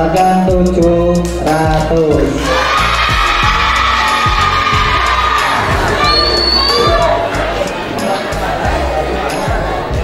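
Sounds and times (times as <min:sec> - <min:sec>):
background music: 0:00.0 - 0:10.0
long high shout: 0:02.4 - 0:07.3
children cheering: 0:02.4 - 0:08.8.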